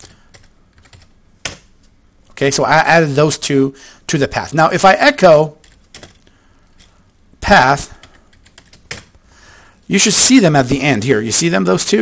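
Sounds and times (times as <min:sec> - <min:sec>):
computer keyboard typing: 0:00.0 - 0:01.8, 0:05.5 - 0:07.1, 0:07.9 - 0:09.2.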